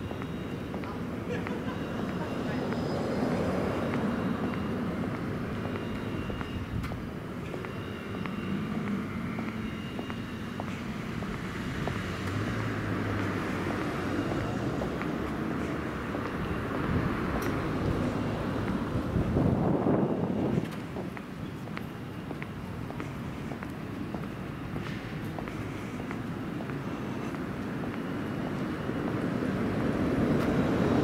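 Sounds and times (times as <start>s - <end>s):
footstep clicks: 0.0s - 29.4s
road traffic: 0.0s - 31.0s
faint voices: 0.5s - 5.2s.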